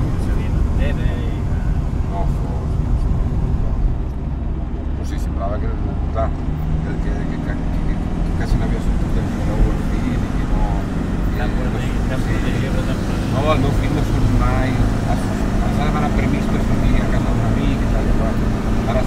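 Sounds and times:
car engine and road rumble: 0:00.0 - 0:19.0
higher engine hum: 0:00.0 - 0:19.0.

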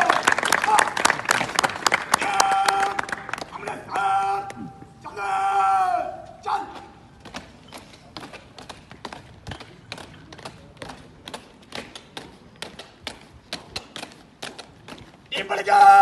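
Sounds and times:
boots marching on tarmac: 0:06.2 - 0:15.4.

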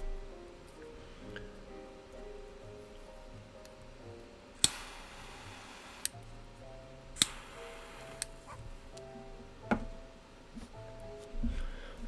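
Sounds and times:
soft background music: 0:00.0 - 0:12.0
torch lighter clicking: 0:04.6 - 0:05.2, 0:07.2 - 0:08.4
jet flame hissing: 0:04.6 - 0:06.2, 0:07.2 - 0:08.6.

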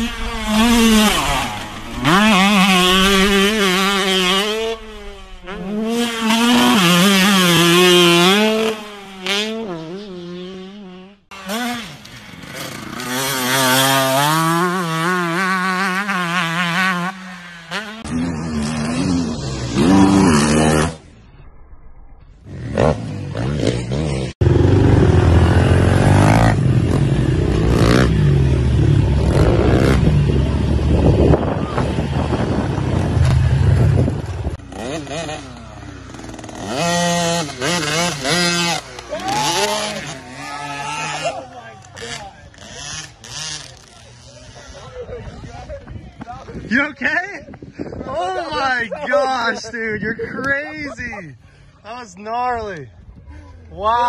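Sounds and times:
dirt bike engines revving: 0:00.0 - 0:21.3, 0:22.2 - 0:54.0.

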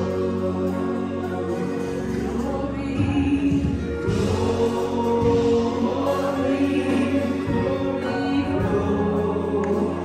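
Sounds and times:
congregation singing: 0:00.0 - 0:10.0
person singing into a microphone: 0:00.0 - 0:10.0.

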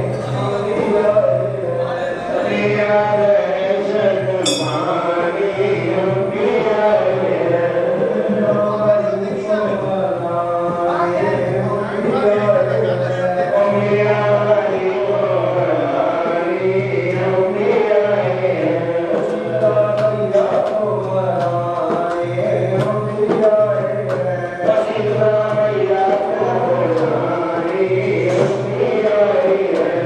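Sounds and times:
men chanting a hymn: 0:00.0 - 0:30.0
hand-drum strokes: 0:17.5 - 0:30.0.

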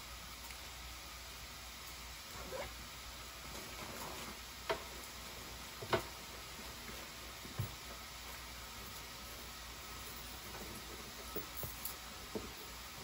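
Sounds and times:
steady hiss: 0:00.0 - 0:13.0.

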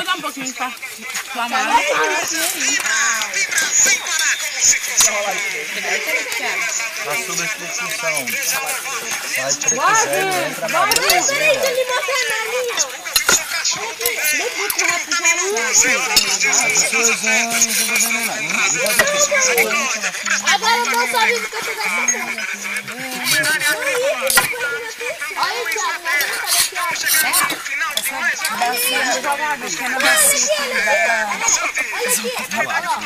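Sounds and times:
people talking over one another: 0:00.0 - 0:33.0
spoons and lids clinking on pots: 0:01.7 - 0:05.5, 0:07.3 - 0:24.8, 0:25.6 - 0:29.4.

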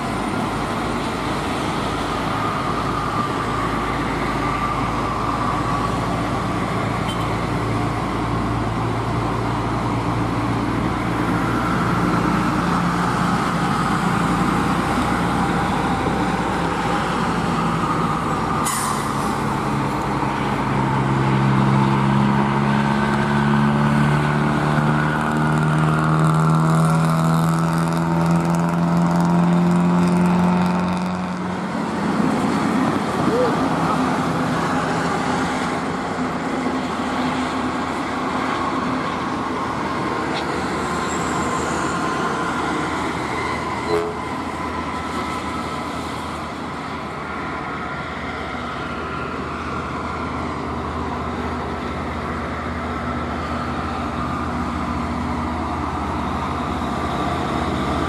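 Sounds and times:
diesel truck engine under load: 0:00.0 - 0:58.0
highway traffic rushing: 0:00.0 - 0:58.0.

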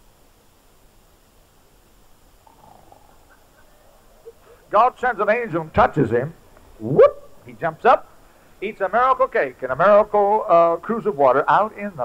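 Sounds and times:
low hum: 0:00.0 - 0:11.2
steady hiss: 0:00.0 - 0:12.0
faint murmur: 0:02.4 - 0:07.7.

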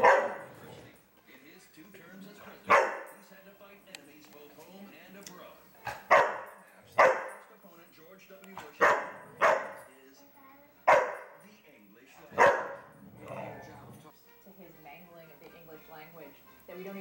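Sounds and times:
dog barking: 0:00.0 - 0:00.7, 0:02.7 - 0:03.2, 0:05.8 - 0:07.4, 0:08.6 - 0:09.8, 0:10.8 - 0:11.4, 0:12.3 - 0:13.5.

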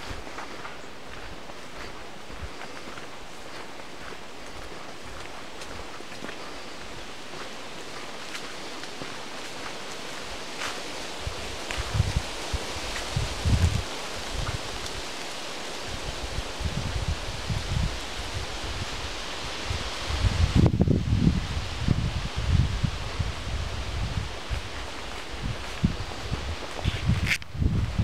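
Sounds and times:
wind buffeting microphone: 0:00.0 - 0:28.0
wind rustling leaves: 0:00.0 - 0:28.0.

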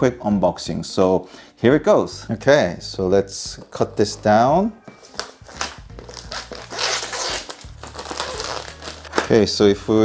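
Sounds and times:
plastic shrink-wrap crinkling: 0:05.0 - 0:09.5.

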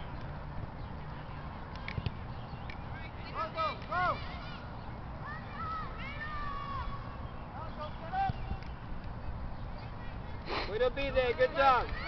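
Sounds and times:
distant children shouting: 0:03.2 - 0:08.4.

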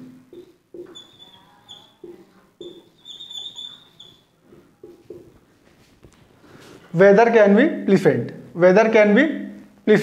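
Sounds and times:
marker squeaking on whiteboard: 0:00.3 - 0:05.4.

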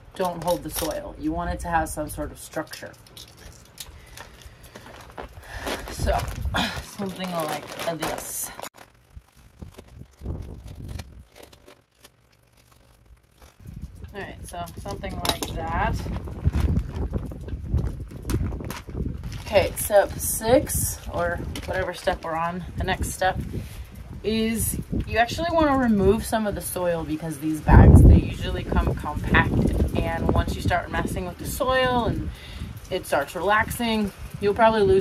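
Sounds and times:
clicks and rustles of handling: 0:00.0 - 0:01.2, 0:02.4 - 0:20.2
steady low rumble: 0:00.0 - 0:34.6
plastic bag crinkling: 0:02.4 - 0:20.3.

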